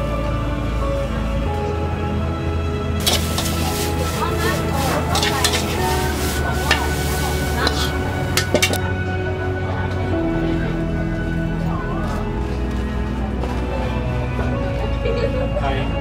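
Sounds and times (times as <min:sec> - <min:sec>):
background music: 0:00.0 - 0:16.0
metal spatula clinking on wok: 0:03.0 - 0:03.6, 0:05.1 - 0:05.9, 0:07.6 - 0:08.8
food sizzling in a wok: 0:03.0 - 0:08.8.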